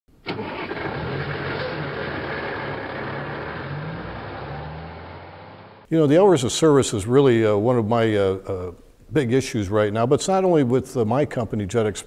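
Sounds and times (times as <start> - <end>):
engine starting click: 0.2 - 3.2
vehicle engine running: 0.7 - 5.8.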